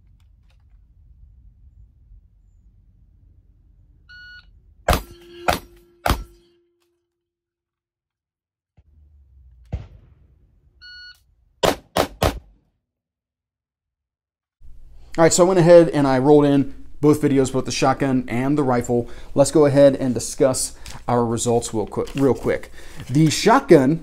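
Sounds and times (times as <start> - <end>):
shot timer beeps: 4.1 - 6.8
shotgun firing: 4.9 - 6.4, 9.7 - 10.5, 11.6 - 12.5
steel target ringing: 4.9 - 6.8.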